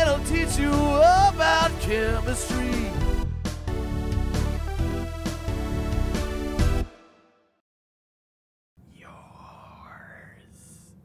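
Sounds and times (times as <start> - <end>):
man whispering: 8.8 - 11.0.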